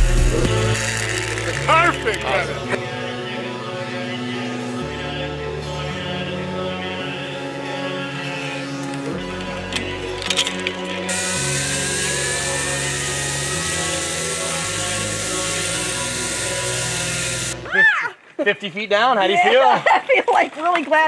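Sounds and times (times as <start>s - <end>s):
zip-line pulleys whirring on cable: 0.0s - 2.0s, 11.1s - 17.6s
background music: 0.0s - 18.3s.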